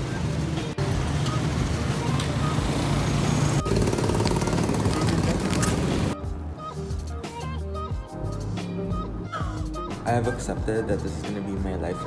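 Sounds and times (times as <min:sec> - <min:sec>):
road traffic: 0:00.0 - 0:12.0.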